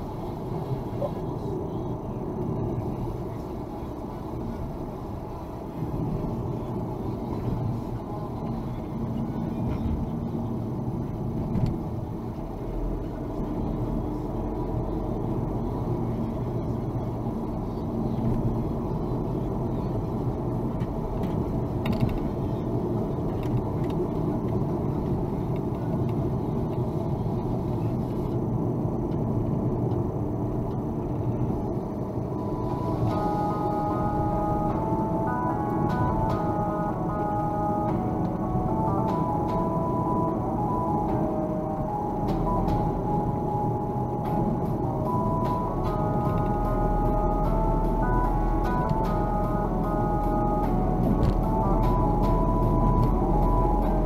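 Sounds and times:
car engine and tyre noise: 0:00.0 - 0:54.0.

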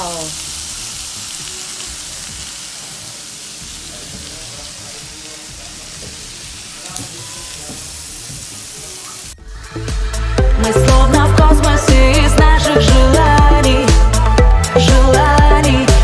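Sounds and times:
meat sizzling on a grill: 0:00.0 - 0:09.4.

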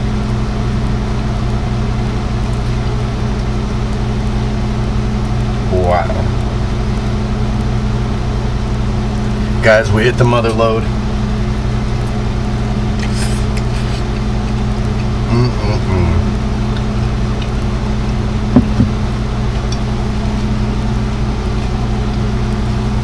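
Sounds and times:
low mechanical hum: 0:00.0 - 0:23.0.

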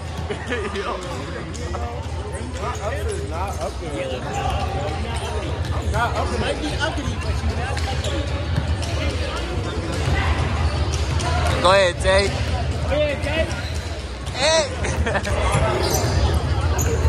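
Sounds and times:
voices in background: 0:00.0 - 0:17.0.

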